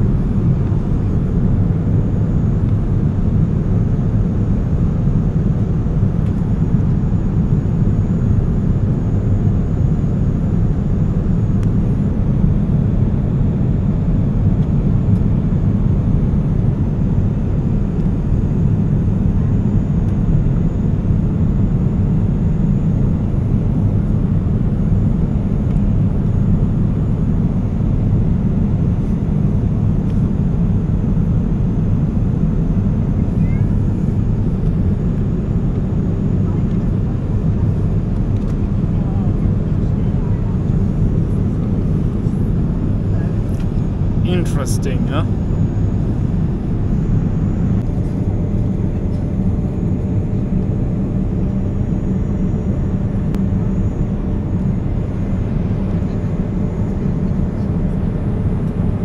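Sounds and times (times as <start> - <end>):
airplane cabin engine rush: 0.0 - 59.0.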